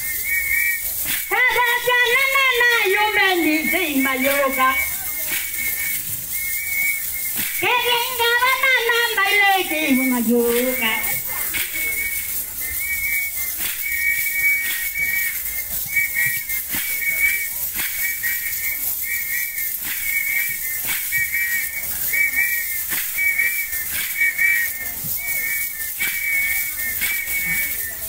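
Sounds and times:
sharp percussive beats: 0.0 - 28.0
whistle blown in trilling pulses: 0.0 - 28.0.

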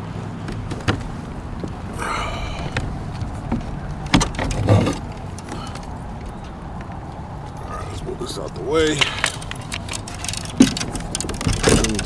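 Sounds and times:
steady low rumble: 0.0 - 12.0
fishing gear clicking: 8.4 - 12.0.

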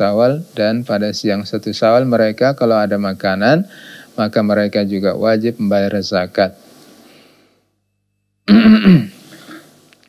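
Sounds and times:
man clearing his throat: 8.5 - 9.7.

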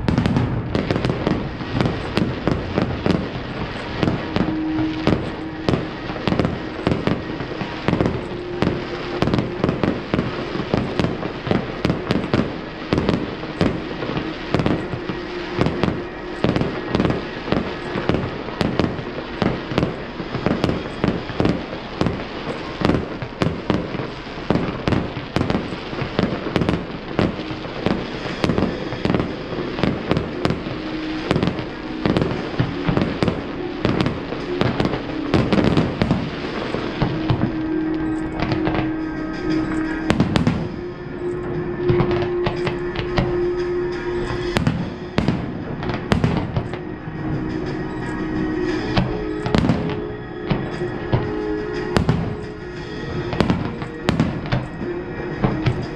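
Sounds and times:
fireworks bangs: 0.0 - 55.9.

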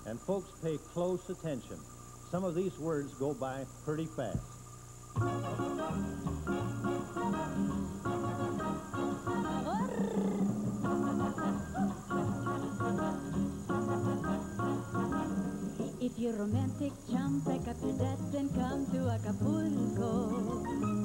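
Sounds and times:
faint high-pitched whine: 0.0 - 21.0
person singing: 5.2 - 21.0.

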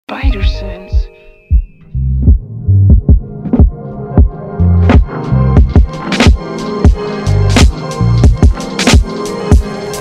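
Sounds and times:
hip-hop instrumental beat: 0.1 - 10.0
deep kick drums with bass: 0.4 - 4.3, 4.9 - 5.9.

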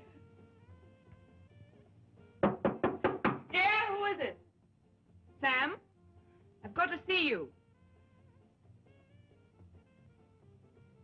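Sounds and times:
knocks on wooden door: 2.4 - 3.5.

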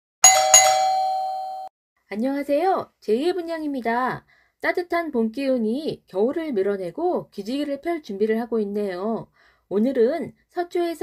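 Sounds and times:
ding-dong chime: 0.2 - 1.7.

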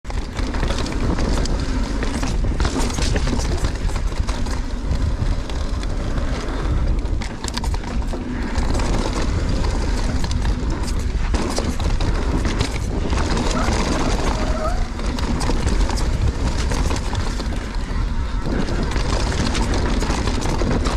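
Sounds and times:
bike clattering over rocks: 0.1 - 20.9
tyres rolling over dirt and rock: 0.1 - 20.9
wind buffeting microphone: 0.1 - 20.9.

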